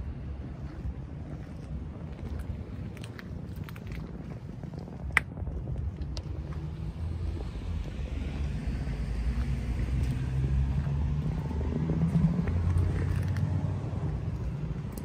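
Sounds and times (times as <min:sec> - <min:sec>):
vehicle engine rumble: 0:00.0 - 0:15.0.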